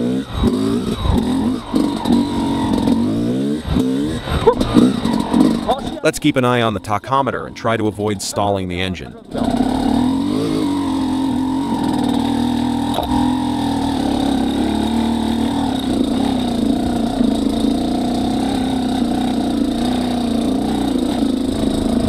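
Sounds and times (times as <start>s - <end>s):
motorcycle engine lugging: 0.2s - 7.2s, 8.4s - 22.0s.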